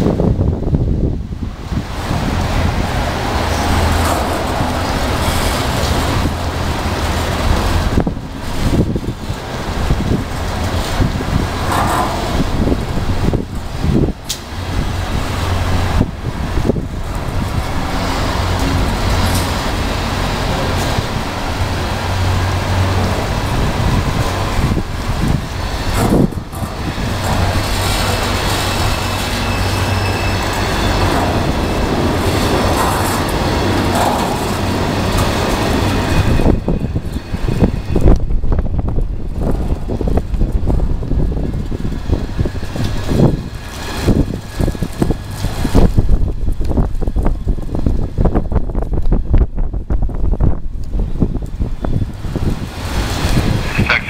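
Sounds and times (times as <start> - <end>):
steel wheels rolling on rail: 0.0 - 54.0.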